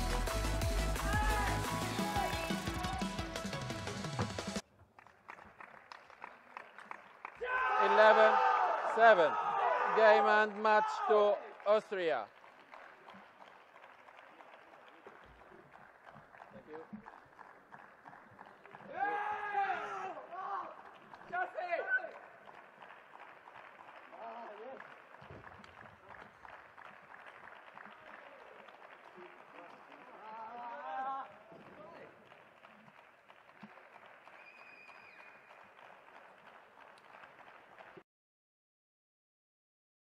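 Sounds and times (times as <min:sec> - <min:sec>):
high-pitched celebratory shouts: 0:00.8 - 0:03.0, 0:07.4 - 0:11.4, 0:18.9 - 0:20.8.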